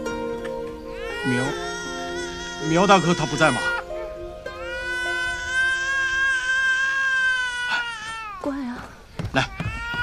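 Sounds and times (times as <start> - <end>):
young child crying: 4.6 - 8.7, 9.4 - 10.0.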